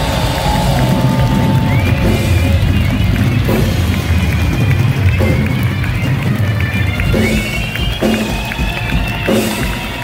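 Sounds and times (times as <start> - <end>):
boomy bass and drums: 0.0 - 10.0
live rock band playing: 0.0 - 10.0.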